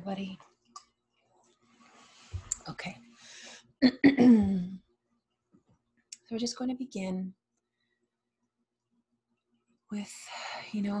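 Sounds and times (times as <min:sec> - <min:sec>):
woman clearing her throat: 0:03.8 - 0:04.8.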